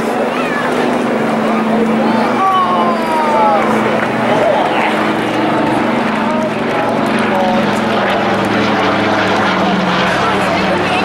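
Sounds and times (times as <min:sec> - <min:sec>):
propeller aircraft engines droning: 0:00.0 - 0:11.0
spectators' voices: 0:00.0 - 0:11.0.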